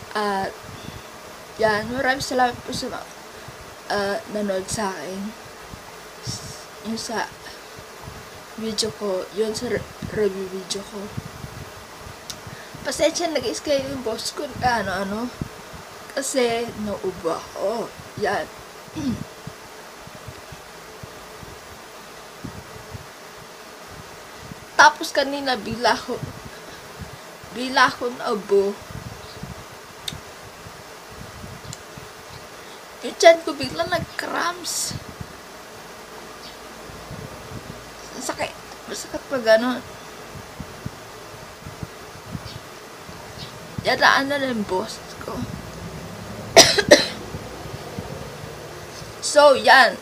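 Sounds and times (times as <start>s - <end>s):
faint buzz: 0.0s - 50.0s
steady background hiss: 0.0s - 50.0s
woman coughing into hand: 46.6s - 47.2s.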